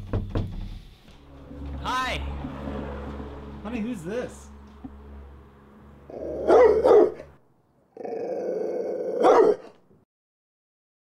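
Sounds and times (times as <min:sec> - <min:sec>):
dog growling and barking: 0:06.1 - 0:07.3, 0:08.0 - 0:09.8.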